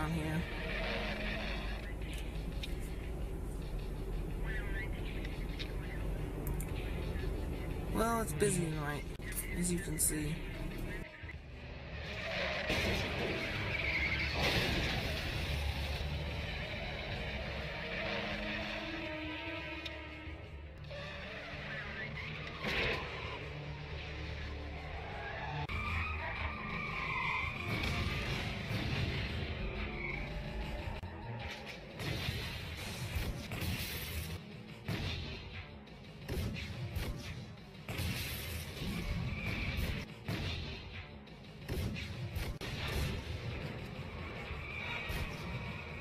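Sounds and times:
tyres skidding: 0:00.0 - 0:07.9, 0:10.5 - 0:20.2, 0:20.8 - 0:32.0
film music score: 0:00.0 - 0:46.0.

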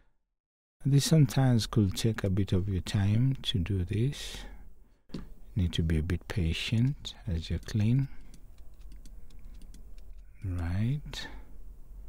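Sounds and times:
low steady hum: 0:00.8 - 0:12.0
keyboard and mouse clicking: 0:07.5 - 0:10.7.

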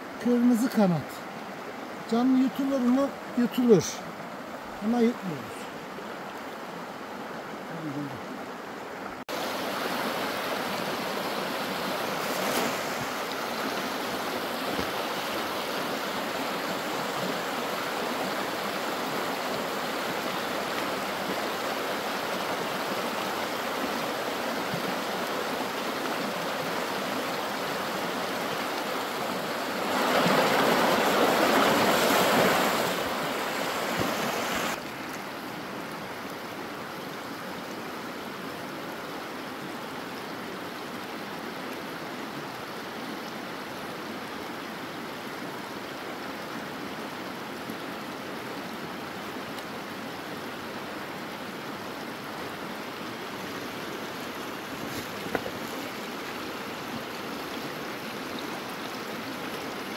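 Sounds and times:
stream rushing over rocks: 0:00.0 - 0:59.9.

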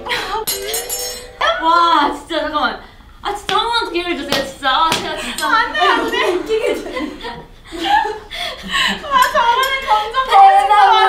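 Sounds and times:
young women laughing: 0:05.6 - 0:09.2.

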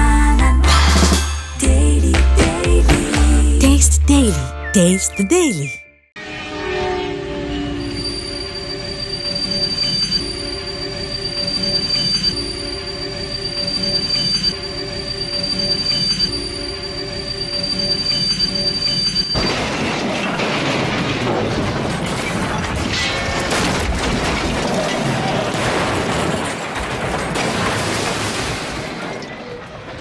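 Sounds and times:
train running on rails: 0:06.4 - 0:19.3
wheel squeal: 0:07.6 - 0:19.4
trains crashing: 0:19.4 - 0:30.0.

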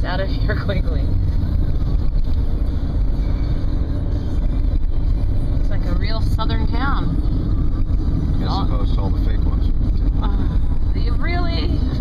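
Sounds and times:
car interior driving rumble: 0:00.0 - 0:12.0.

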